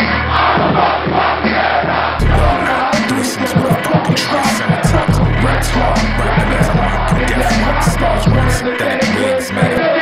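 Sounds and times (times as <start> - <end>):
crowd shouting and cheering: 0.0 - 10.0
hip-hop beat with deep bass: 2.2 - 10.0.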